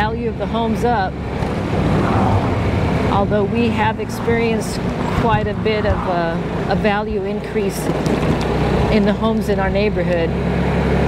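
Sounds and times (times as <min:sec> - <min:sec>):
wind and road noise: 0:00.0 - 0:11.0.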